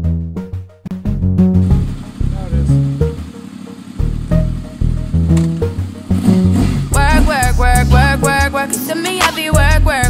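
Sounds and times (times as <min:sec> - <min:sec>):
pop music with deep bass: 0:04.2 - 0:10.0.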